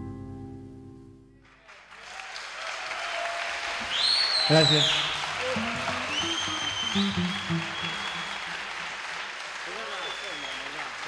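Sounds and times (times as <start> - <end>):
audience applauding: 1.4 - 11.0
voices over clapping: 1.4 - 11.0
long whistles: 3.8 - 8.6, 9.7 - 10.8.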